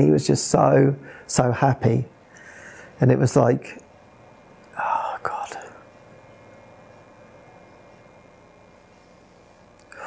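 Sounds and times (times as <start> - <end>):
man whispered breaths: 4.7 - 5.9.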